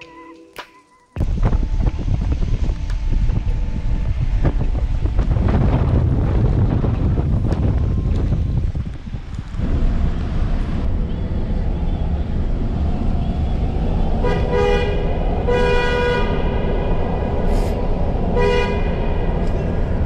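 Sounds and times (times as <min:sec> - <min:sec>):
road and engine rumble: 0:01.0 - 0:20.0
car horn honking: 0:14.2 - 0:16.7, 0:18.3 - 0:19.3.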